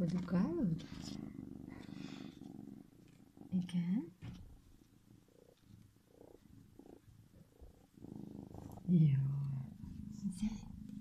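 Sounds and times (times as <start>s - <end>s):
kitten purring: 0.0s - 11.0s.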